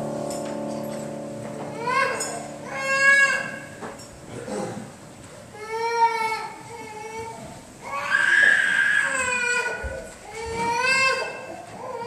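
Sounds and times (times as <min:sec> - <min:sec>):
church music closing chord: 0:00.0 - 0:04.5
young child crying out: 0:01.7 - 0:03.7, 0:05.6 - 0:12.0.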